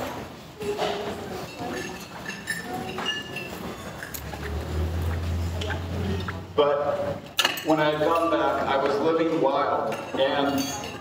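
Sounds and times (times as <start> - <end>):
dishes and cutlery clinking: 0.0 - 4.5, 7.3 - 11.0.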